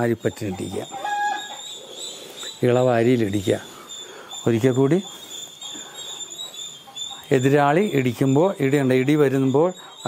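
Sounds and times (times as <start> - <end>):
faint steady background noise: 0.0 - 10.0
man speaking: 2.6 - 3.8, 4.4 - 5.1, 7.2 - 9.8.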